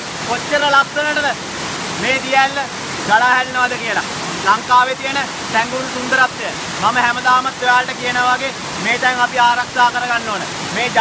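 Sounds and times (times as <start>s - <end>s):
waterfall rushing over rocks: 0.0s - 11.0s
man talking: 0.3s - 1.4s, 2.0s - 11.0s.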